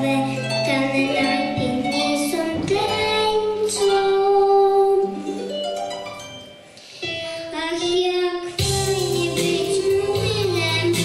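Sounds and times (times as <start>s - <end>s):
girl singing into microphone: 0.0s - 5.4s, 6.8s - 11.0s
instrumental accompaniment: 0.0s - 11.0s.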